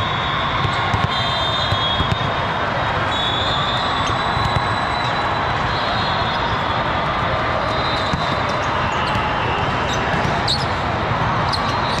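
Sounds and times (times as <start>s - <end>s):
crowd chatter: 0.0s - 12.0s
volleyballs being hit and bounced: 0.6s - 2.6s, 4.4s - 4.9s, 8.0s - 9.3s, 9.9s - 12.0s
sneaker squeaks: 3.2s - 6.7s, 7.6s - 10.8s, 11.4s - 12.0s.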